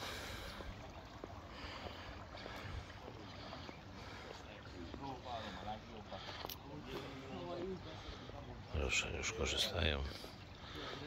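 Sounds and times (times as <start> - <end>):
pool water washing: 0.0 - 11.0.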